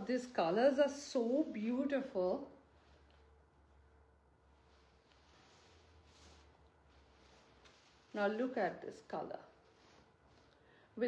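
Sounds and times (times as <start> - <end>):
fabric rustling: 0.0 - 11.0
faint room hum: 0.0 - 11.0.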